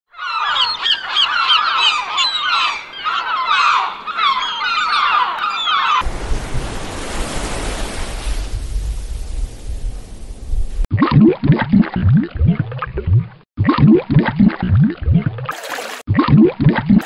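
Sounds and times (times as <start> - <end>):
gulls squawking: 0.1 - 6.0
sea waves: 0.2 - 10.4.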